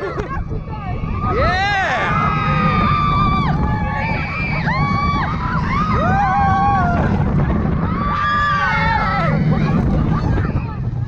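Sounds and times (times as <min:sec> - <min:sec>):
coaster train rumbling on track: 0:00.0 - 0:11.0
wind rushing past microphone: 0:00.0 - 0:11.0
riders screaming: 0:01.0 - 0:10.8.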